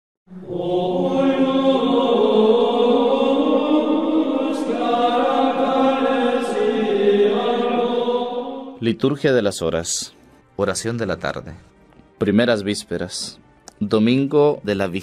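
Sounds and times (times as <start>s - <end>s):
voices singing slow chant: 0.3s - 8.9s.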